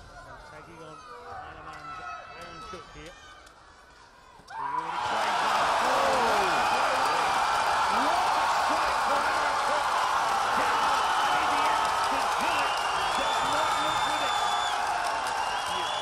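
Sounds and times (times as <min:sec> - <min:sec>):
arena crowd cheering: 0:04.3 - 0:16.0
shouts and whoops: 0:04.4 - 0:16.0.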